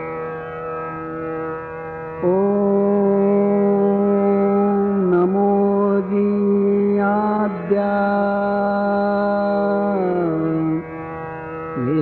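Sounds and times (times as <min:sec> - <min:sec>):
prayer chant: 0:02.2 - 0:10.8, 0:11.8 - 0:12.0.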